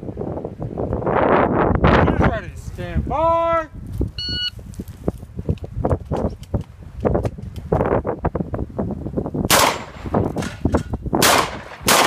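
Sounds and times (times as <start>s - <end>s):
shot timer beep: 4.2s - 4.6s.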